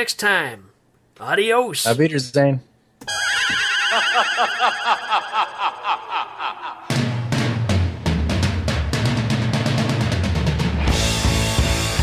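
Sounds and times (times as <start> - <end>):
high trilling laugh: 3.4 - 7.0.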